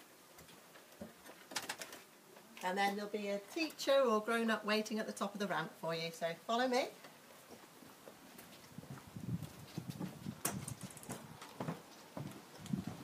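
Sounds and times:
footsteps on a ramp: 7.5 - 13.0.

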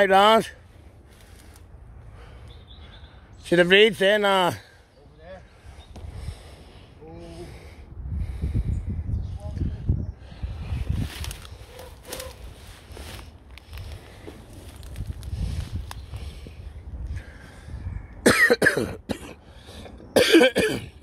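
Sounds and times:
steady low rumble: 5.4 - 18.4
man coughing: 18.2 - 19.4, 20.2 - 21.0.

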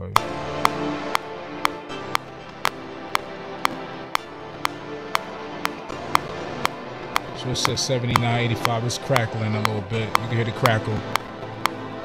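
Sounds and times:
playback crackling: 0.0 - 12.0
sustained synth chords: 0.0 - 12.0
sharp click on beat: 0.1 - 12.0.

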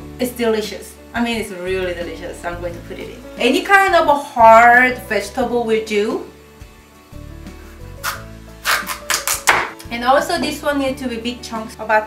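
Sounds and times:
knife chopping squash on wooden board: 8.0 - 9.8.

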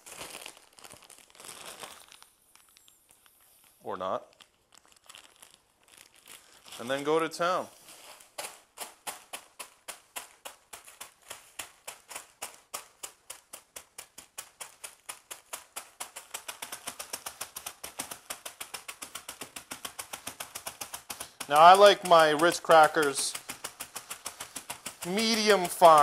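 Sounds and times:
crackers crushed in plastic bag: 0.0 - 7.2.

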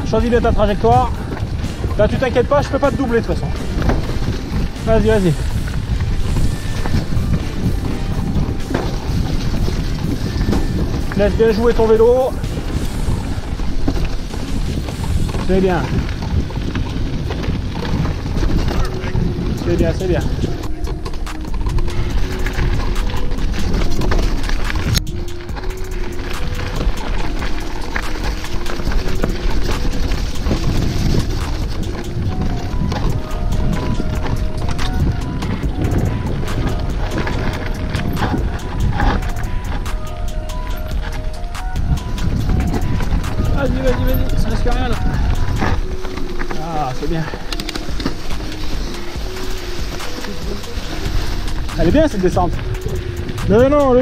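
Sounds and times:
background music with melody: 0.0 - 54.0
bike rattles and knocks: 0.0 - 54.0
wind and tyre rumble: 0.0 - 54.0.

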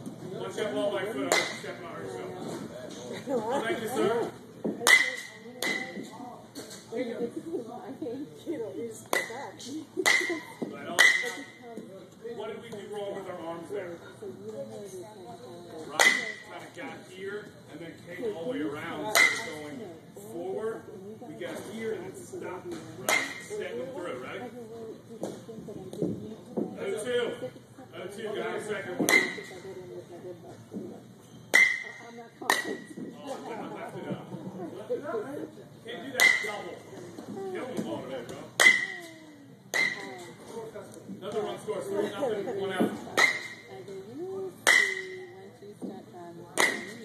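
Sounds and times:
metal bat hitting ball: 31.5 - 32.8, 44.7 - 45.2
bat cracking against ball: 46.6 - 47.0.

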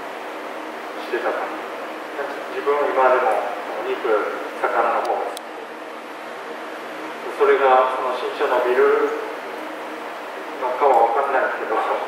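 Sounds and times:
man speaking: 2.2 - 5.4, 10.6 - 12.0.

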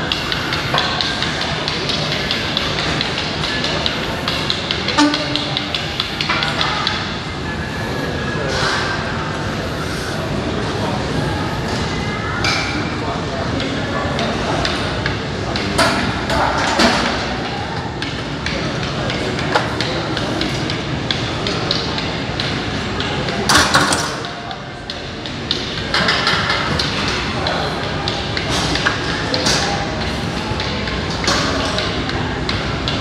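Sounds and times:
voices: 0.0 - 33.0.

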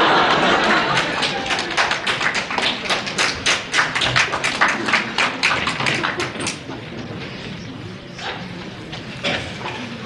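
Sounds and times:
audience clapping: 0.0 - 6.7.

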